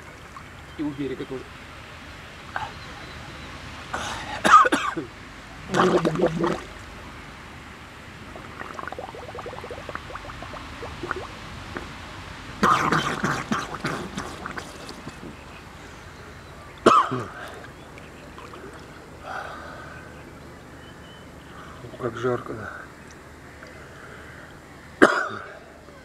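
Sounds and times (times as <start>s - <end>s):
water lapping: 0.0s - 24.5s
man coughing: 4.0s - 5.1s, 16.9s - 17.5s, 25.0s - 25.5s
water splash: 5.6s - 7.1s, 8.2s - 15.8s.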